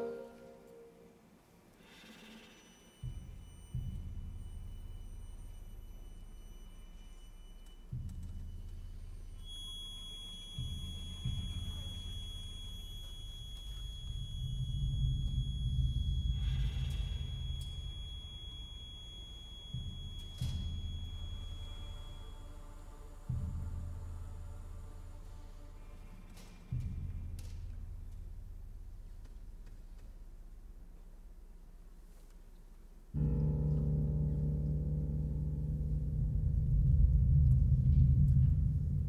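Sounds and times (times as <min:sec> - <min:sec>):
faint high held tone: 0:00.0 - 0:01.2, 0:09.2 - 0:23.6
deep low drum rolls: 0:07.9 - 0:25.5, 0:33.2 - 0:39.0.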